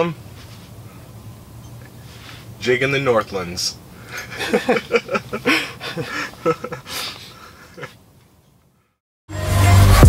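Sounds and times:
men laughing: 4.0 - 8.0.

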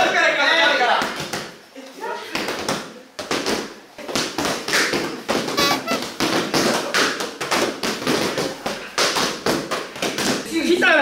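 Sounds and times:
boxing gloves punching pads: 2.5 - 10.4.

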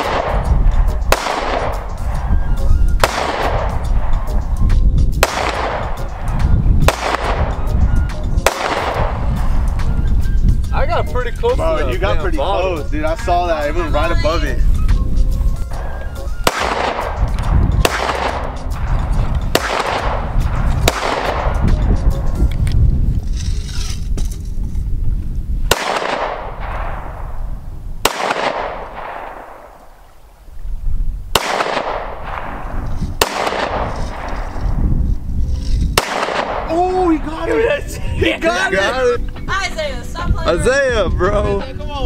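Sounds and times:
handgun shots echoing: 0.0 - 2.2, 3.0 - 4.4, 5.2 - 6.3, 6.9 - 7.6, 8.5 - 9.2, 16.4 - 21.7, 25.7 - 27.3, 28.0 - 29.8, 31.4 - 34.6, 36.0 - 36.7.

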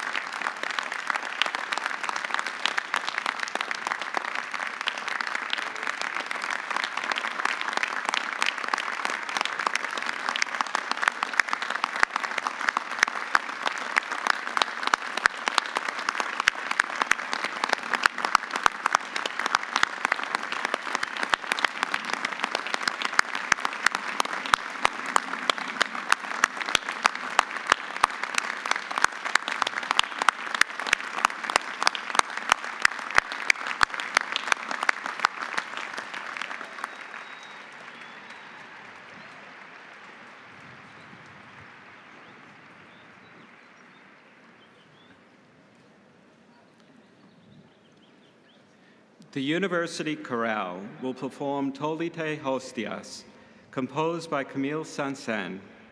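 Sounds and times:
sharp claps close by: 0.0 - 44.2
large crowd applauding: 0.0 - 45.9.

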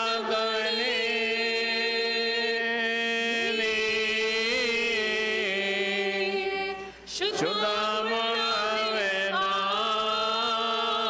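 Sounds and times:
voices chanting slow melody: 0.0 - 11.0.

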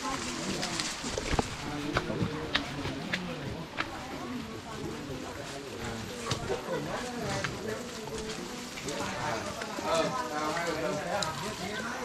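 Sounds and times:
footsteps on muddy path: 0.0 - 5.4
people talking: 0.0 - 12.0.

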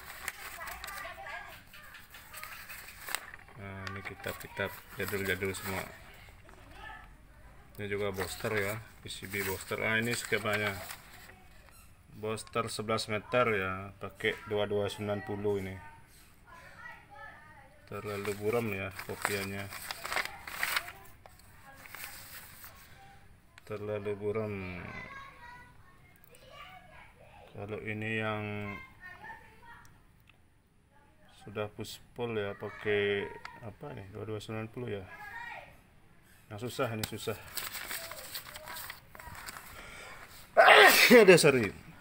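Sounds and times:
paper rustling: 0.0 - 6.9, 7.8 - 11.8, 17.9 - 23.1, 37.0 - 41.7.

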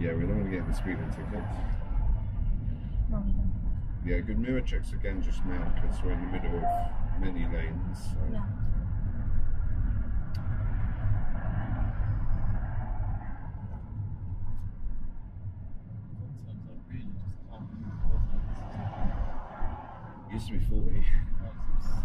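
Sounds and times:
road and engine rumble in car: 0.0 - 22.0.

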